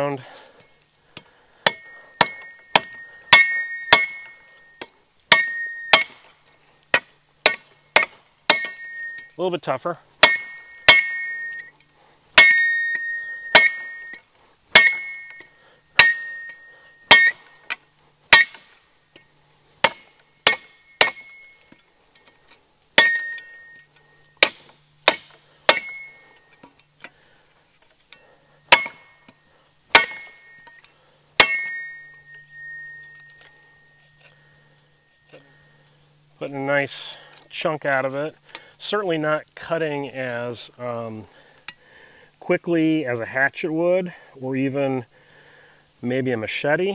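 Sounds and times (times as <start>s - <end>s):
shovel blade chopping branch: 1.2s - 9.3s, 10.2s - 11.7s, 12.4s - 17.6s, 18.3s - 18.8s, 19.8s - 21.8s, 24.4s - 27.2s, 28.7s - 30.8s, 31.4s - 33.5s
steel blade ringing: 1.6s - 6.2s, 7.4s - 9.4s, 10.2s - 17.7s, 18.3s - 21.8s, 23.0s - 26.8s, 28.1s - 35.9s.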